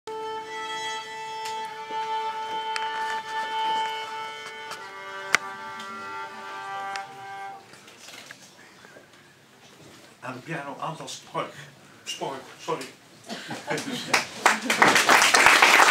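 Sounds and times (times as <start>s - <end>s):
violin playing long held notes: 0.1s - 7.7s.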